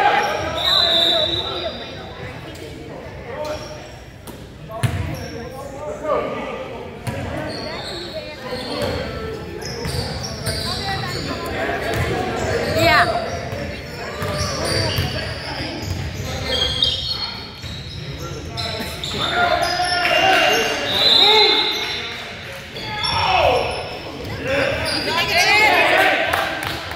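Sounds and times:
sneakers squeaking: 0.0 - 2.8, 3.4 - 5.8, 7.0 - 26.9
people talking: 4.6 - 26.9.

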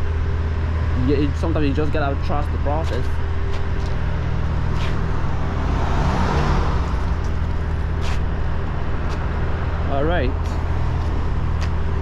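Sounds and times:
low rumble of traffic: 0.0 - 12.0
car passing by: 4.8 - 8.2.

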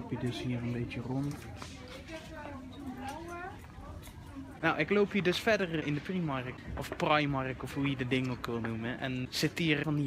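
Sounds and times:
low shop noise: 0.0 - 10.0.

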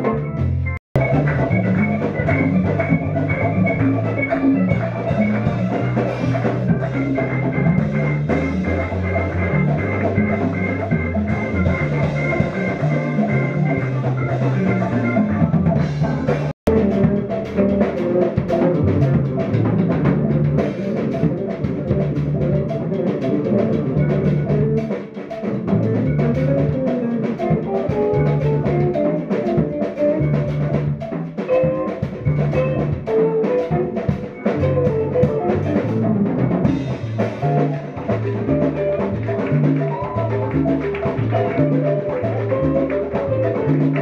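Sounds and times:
double bass: 0.0 - 44.0
drums and percussion: 0.0 - 44.0
electric guitar: 0.0 - 44.0.

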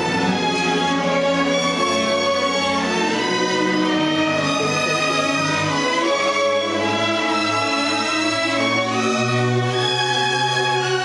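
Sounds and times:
string orchestra playing: 0.0 - 11.0.

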